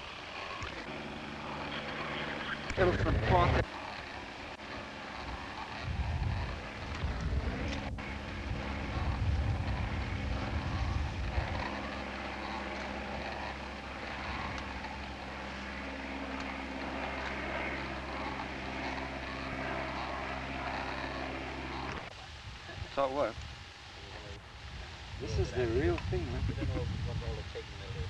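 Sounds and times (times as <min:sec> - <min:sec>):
heavy low rumble: 0:00.0 - 0:28.0
propeller engine droning: 0:00.0 - 0:28.0.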